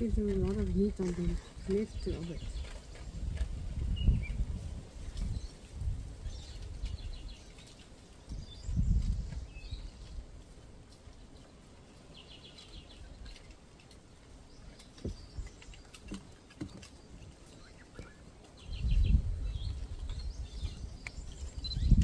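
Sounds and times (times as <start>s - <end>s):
wind buffeting microphone: 0.0s - 10.8s, 14.4s - 22.0s
birds chirping: 0.0s - 22.0s.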